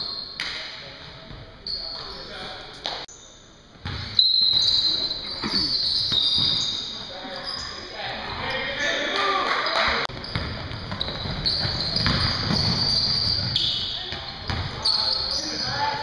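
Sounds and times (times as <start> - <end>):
sneakers squeaking on court: 1.3 - 16.0
basketball bouncing: 10.1 - 14.8.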